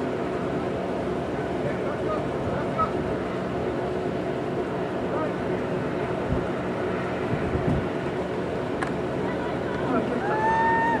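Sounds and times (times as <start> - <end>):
wind buffeting microphone: 6.1 - 8.7.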